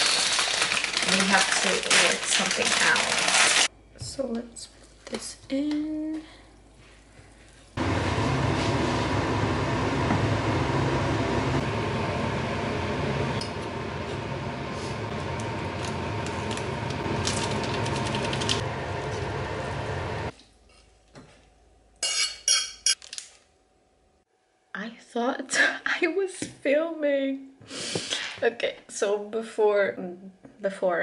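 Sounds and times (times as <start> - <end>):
low hum: 7.8 - 20.3.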